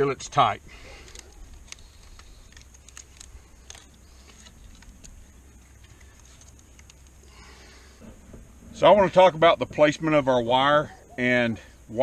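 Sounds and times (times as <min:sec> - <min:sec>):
wire twisting clicks and scrapes: 0:00.9 - 0:07.3.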